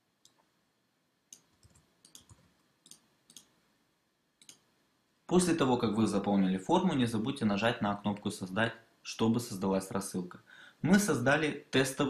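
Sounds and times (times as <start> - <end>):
mouse and keyboard clicks: 1.3 - 3.5, 4.4 - 4.6.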